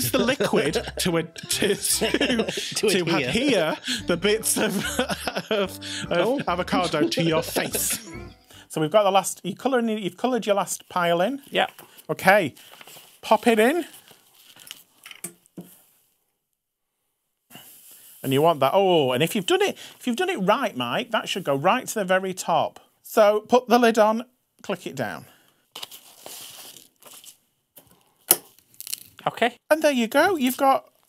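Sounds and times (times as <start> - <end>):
paper rustling and clicking: 12.6 - 13.1
small scrapes and rustles: 25.8 - 29.1.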